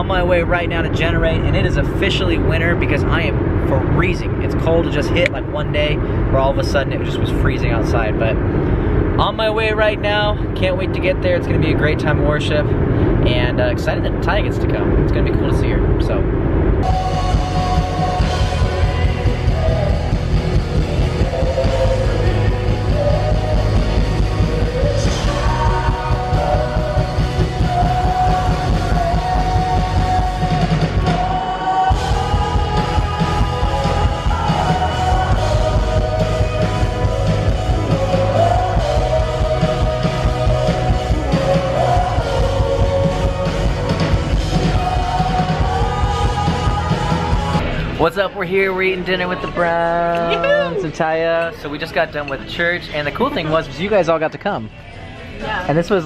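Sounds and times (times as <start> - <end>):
lead vocal singing: 16.8 - 47.8
worship band playing: 16.8 - 50.8.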